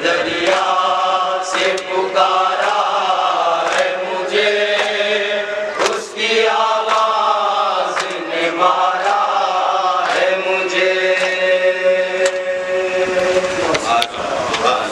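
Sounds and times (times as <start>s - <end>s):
men chanting in unison: 0.0s - 14.9s.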